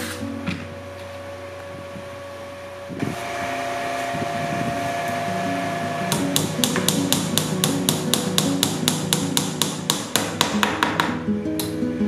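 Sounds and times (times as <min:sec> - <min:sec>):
background music: 0:04.8 - 0:12.0
hammer tapping bamboo peg: 0:06.1 - 0:11.2.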